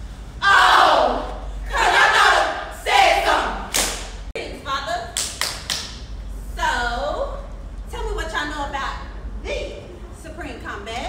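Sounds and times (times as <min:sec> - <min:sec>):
hand claps: 0:03.7 - 0:04.2, 0:05.2 - 0:06.1.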